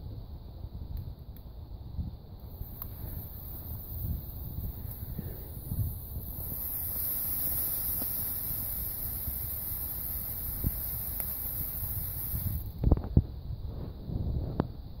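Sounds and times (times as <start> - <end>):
firework fountain hissing: 2.4 - 12.9.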